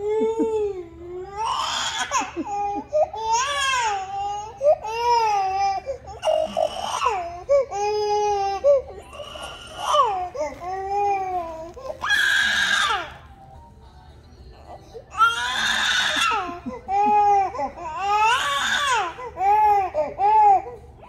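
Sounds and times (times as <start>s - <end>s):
baby crying: 0.0s - 13.2s, 15.1s - 20.8s.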